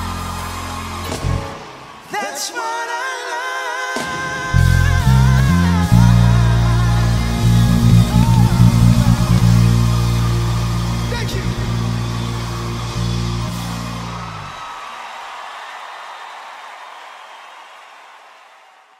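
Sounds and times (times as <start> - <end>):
pop song with vocals: 0.0 - 12.1
electric bass notes: 4.6 - 14.5.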